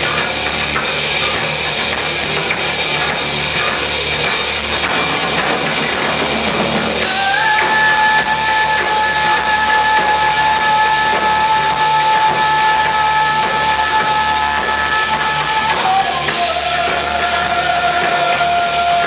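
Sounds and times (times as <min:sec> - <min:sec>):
live rock band playing: 0:00.0 - 0:19.0
person singing: 0:07.0 - 0:19.0.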